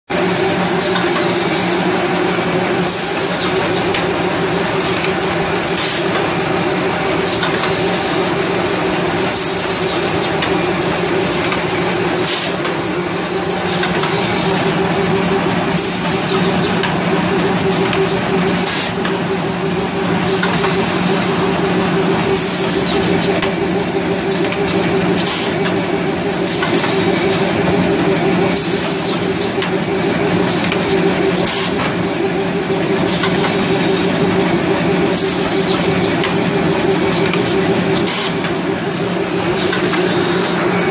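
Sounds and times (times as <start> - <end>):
packing machine humming: 0.1 - 40.9.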